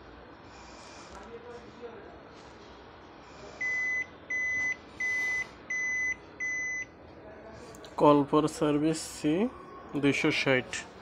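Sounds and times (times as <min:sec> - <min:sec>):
copier beeping: 0:03.6 - 0:06.9.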